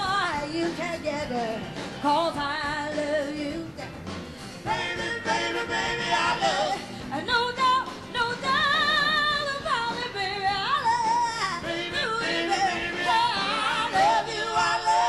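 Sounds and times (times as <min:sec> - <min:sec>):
live blues band: 0:00.0 - 0:15.0
woman singing blues: 0:00.0 - 0:15.0.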